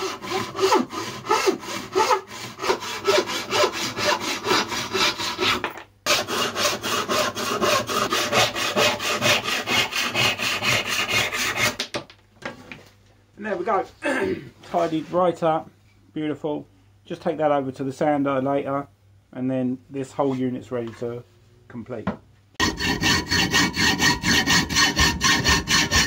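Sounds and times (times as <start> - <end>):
hand saw cutting plywood: 0.0 - 11.8, 22.6 - 26.0.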